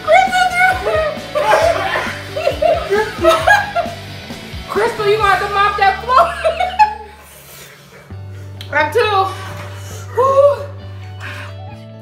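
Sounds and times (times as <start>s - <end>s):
background music with bass: 0.0s - 12.0s
people laughing: 0.7s - 4.2s, 4.8s - 7.3s.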